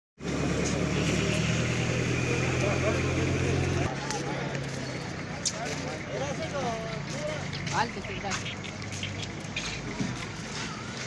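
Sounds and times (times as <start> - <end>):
vehicle engine idling: 0.2 - 11.0.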